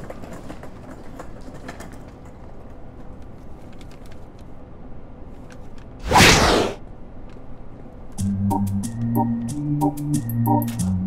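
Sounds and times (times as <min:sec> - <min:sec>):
whoosh: 0:06.0 - 0:06.8.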